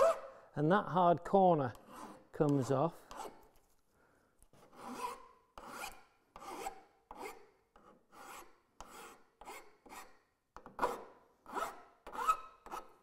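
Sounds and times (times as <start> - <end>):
file rasping on metal: 0.0 - 0.3, 1.7 - 3.5, 4.6 - 13.0.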